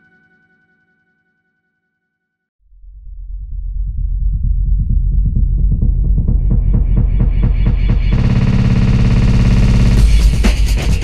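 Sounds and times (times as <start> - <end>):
pulsing synth bass: 2.8 - 11.0
electronic dance music: 6.6 - 11.0.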